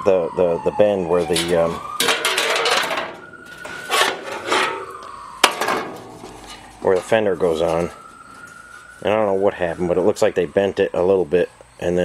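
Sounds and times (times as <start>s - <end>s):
rubbing and scraping on workbench: 1.3s - 4.9s.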